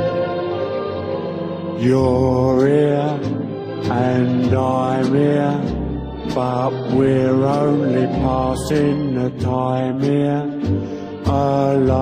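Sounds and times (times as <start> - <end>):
slow ballad with orchestra: 0.0 - 12.0.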